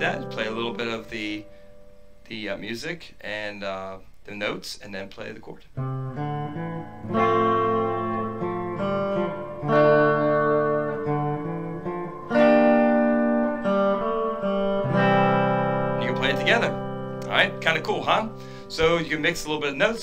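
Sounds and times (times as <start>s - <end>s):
electric guitar strummed chords: 0.0s - 2.4s, 5.8s - 20.0s
electric guitar picked notes: 0.0s - 2.6s, 5.7s - 20.0s.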